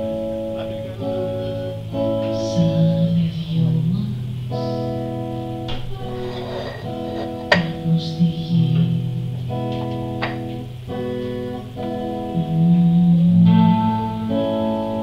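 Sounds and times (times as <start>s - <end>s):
band playing chords: 0.0s - 15.0s.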